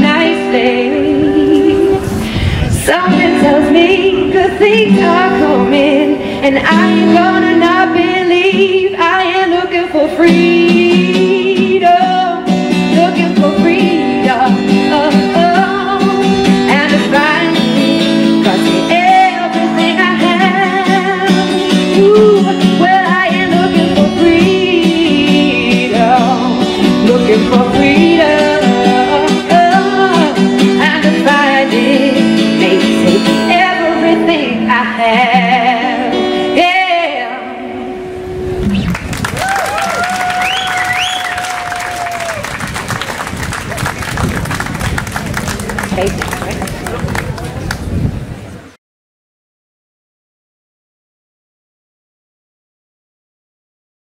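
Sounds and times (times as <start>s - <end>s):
woman singing with vibrato: 0.0s - 38.3s
strummed acoustic guitar: 0.0s - 38.9s.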